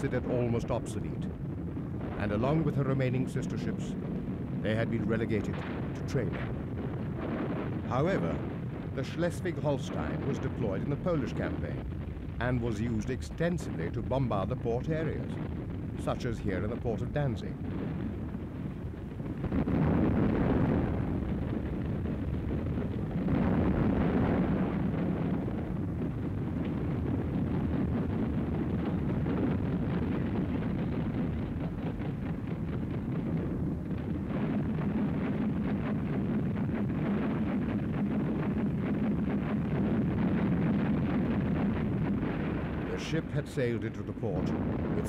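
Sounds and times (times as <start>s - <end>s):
heavy gunfire and explosions: 0.0s - 45.0s.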